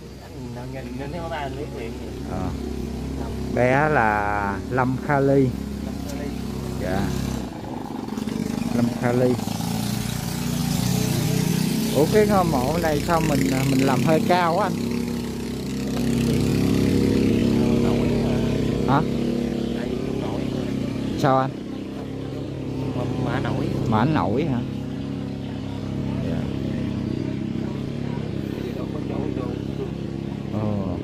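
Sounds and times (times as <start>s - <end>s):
small engine running: 0.0s - 31.0s.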